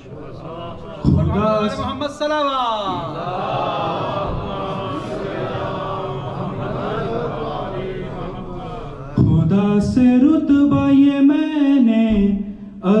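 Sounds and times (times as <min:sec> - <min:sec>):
voices chanting together: 0:00.0 - 0:01.8, 0:03.0 - 0:09.8
man singing into a microphone: 0:09.2 - 0:13.0.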